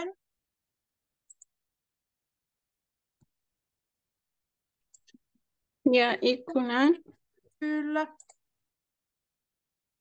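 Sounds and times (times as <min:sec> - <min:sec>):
computer mouse clicks: 0:01.2 - 0:01.6, 0:08.2 - 0:08.5.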